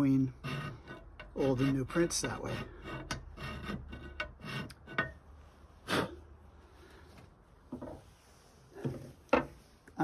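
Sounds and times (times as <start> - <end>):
file rasping: 0.0 - 5.2.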